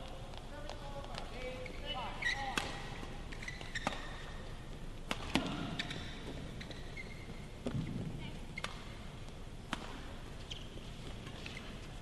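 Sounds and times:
shoes squeaking on court: 0:00.4 - 0:04.8, 0:05.5 - 0:12.0
racket striking shuttlecock: 0:02.5 - 0:07.0, 0:08.6 - 0:11.6.

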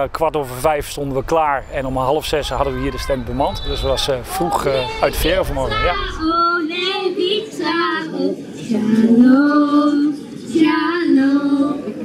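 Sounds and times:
girls singing into microphones: 0:05.1 - 0:12.0.

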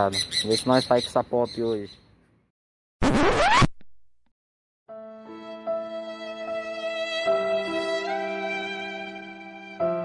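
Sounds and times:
record scratch: 0:03.0 - 0:04.0
sustained string music: 0:04.9 - 0:10.0.

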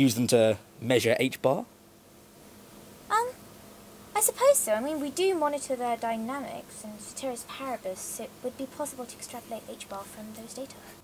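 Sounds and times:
woman saying um: 0:03.1 - 0:03.4, 0:04.2 - 0:11.0.

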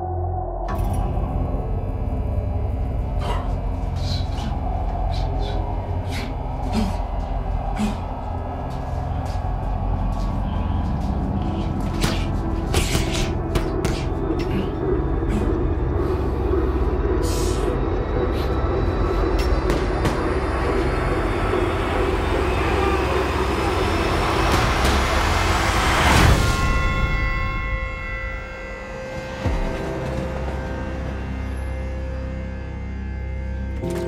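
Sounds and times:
sustained chords: 0:00.0 - 0:34.0
trailer score swell: 0:00.0 - 0:34.0.

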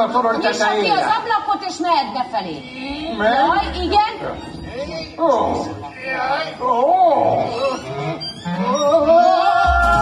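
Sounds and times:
wavering vocal wails: 0:06.7 - 0:10.0.

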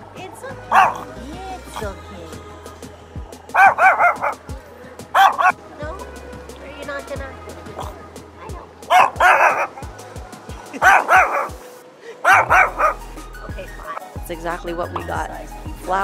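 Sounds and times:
small dog yapping: 0:00.7 - 0:01.1, 0:03.6 - 0:04.4, 0:05.2 - 0:05.6, 0:07.8 - 0:08.0, 0:08.9 - 0:09.9, 0:10.8 - 0:11.6, 0:12.3 - 0:13.0.

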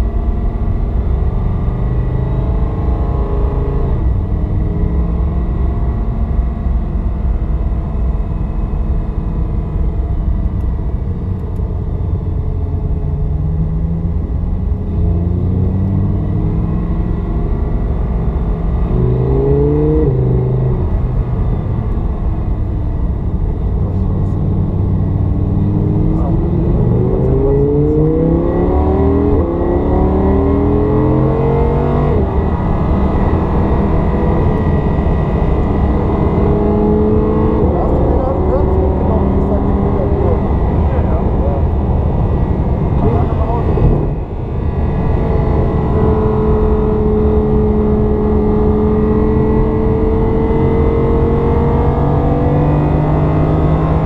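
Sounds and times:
car engine revving in cabin: 0:00.0 - 0:54.0.

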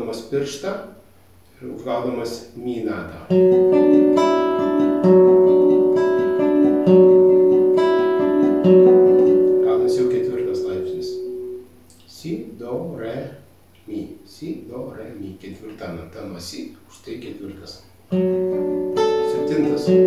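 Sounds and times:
classical guitar picking a chord: 0:03.3 - 0:12.0, 0:18.1 - 0:20.0.

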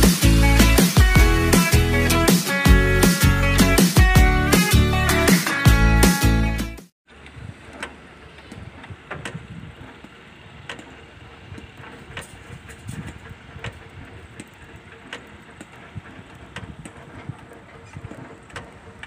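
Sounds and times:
steady engine hum: 0:00.0 - 0:06.0, 0:07.1 - 0:19.0
low wind rumble on microphone: 0:07.2 - 0:07.7, 0:08.4 - 0:19.0.

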